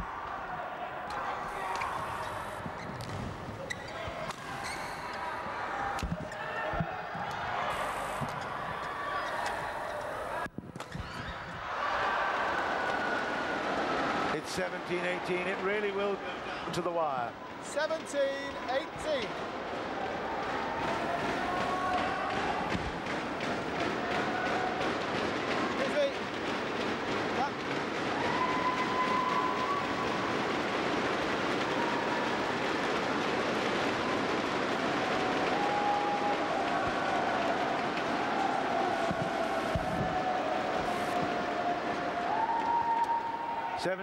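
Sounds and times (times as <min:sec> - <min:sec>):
crowd cheering and chanting: 0:00.0 - 0:02.8, 0:03.6 - 0:10.5, 0:11.5 - 0:44.0.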